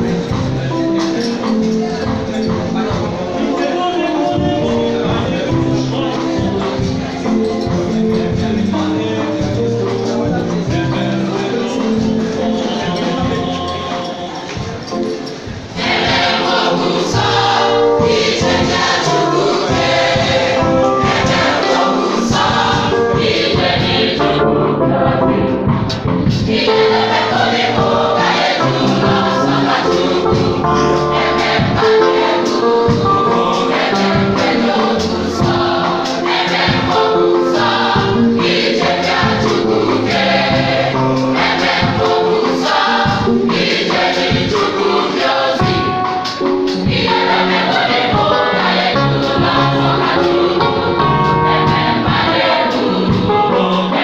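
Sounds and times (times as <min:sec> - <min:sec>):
church choir singing: 0:00.0 - 0:54.0
steady beat: 0:00.0 - 0:54.0.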